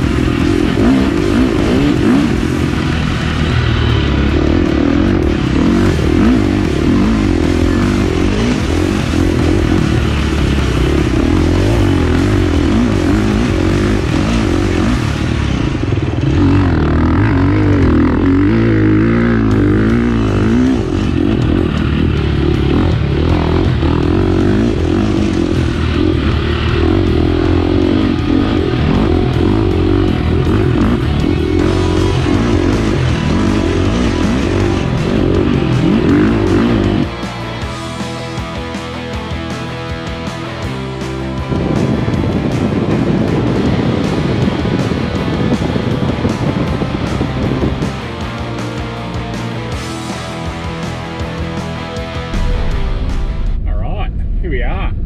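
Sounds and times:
dirt bike engine revving: 0.0s - 53.6s
music playing: 0.0s - 55.0s.

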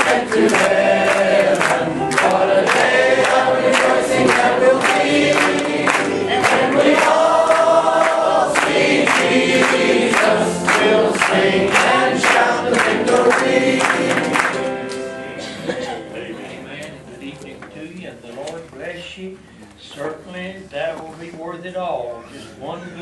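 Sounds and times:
congregation singing a hymn: 0.0s - 17.3s
organ: 0.0s - 17.8s
piano: 0.0s - 18.0s.

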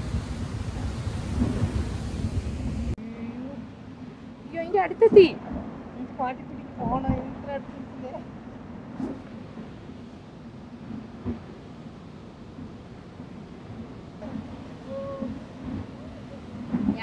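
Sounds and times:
roar of falling water: 0.0s - 17.0s.

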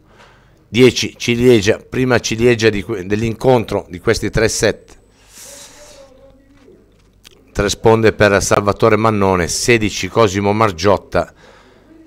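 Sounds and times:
breathy hiss near microphone: 5.0s - 6.8s, 11.3s - 12.0s
faint low voice murmur: 11.8s - 12.0s.

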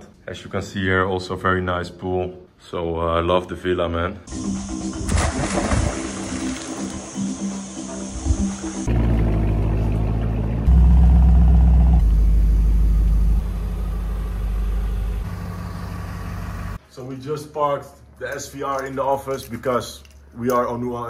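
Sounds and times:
music: 4.3s - 8.9s
car engine rumbling: 8.8s - 16.8s.

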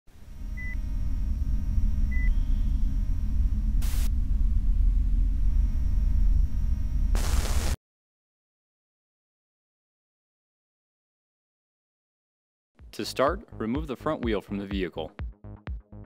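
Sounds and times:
low rumble: 0.1s - 7.8s
burst of static: 3.8s - 4.1s, 7.1s - 7.8s.

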